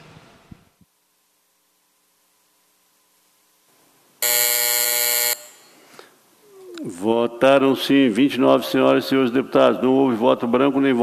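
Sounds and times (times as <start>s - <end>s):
loud buzzy buzzer tone: 4.2s - 5.8s.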